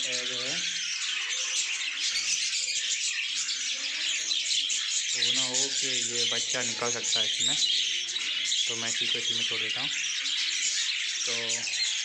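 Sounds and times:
budgerigars chattering: 0:00.0 - 0:12.0.

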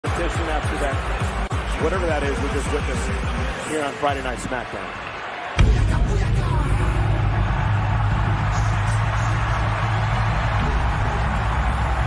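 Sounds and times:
bass-heavy entrance music: 0:00.1 - 0:03.7, 0:05.6 - 0:12.0.

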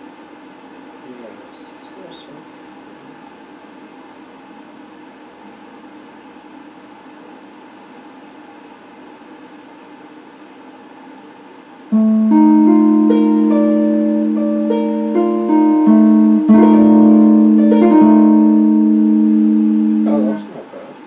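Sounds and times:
electric guitar note: 0:11.9 - 0:20.6
guitar amplifier hum: 0:11.9 - 0:20.8.

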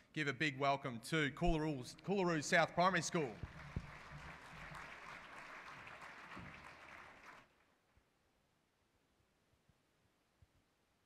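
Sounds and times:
audience applauding: 0:03.1 - 0:07.5.

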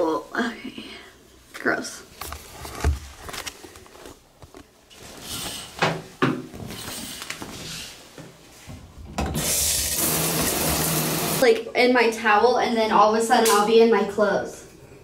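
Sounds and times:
shower water running: 0:09.4 - 0:11.5.

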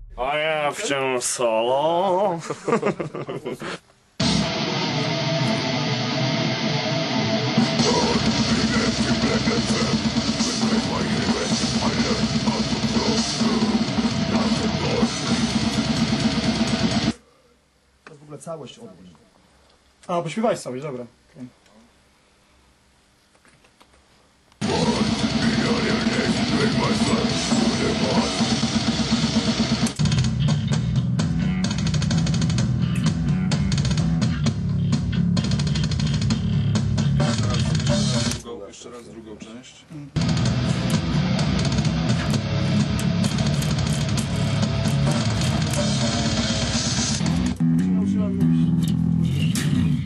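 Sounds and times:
electric bass guitar playing: 0:00.0 - 0:00.2, 0:04.2 - 0:17.2, 0:24.6 - 0:38.3, 0:40.2 - 0:50.0
death metal music: 0:04.2 - 0:17.2, 0:24.6 - 0:38.4, 0:40.2 - 0:50.0.

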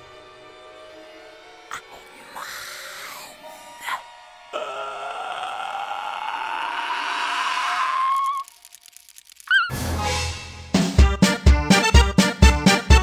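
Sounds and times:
loud scream-like burst: 0:04.6 - 0:08.8.

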